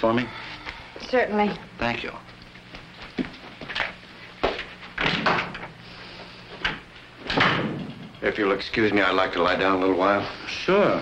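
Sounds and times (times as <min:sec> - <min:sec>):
door shutting: 0:05.0 - 0:05.7.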